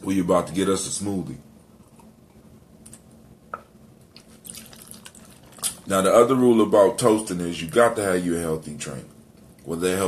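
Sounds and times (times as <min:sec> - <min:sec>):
faint liquid splashing: 0:04.1 - 0:06.0
drink pouring into plastic cup: 0:04.2 - 0:05.9.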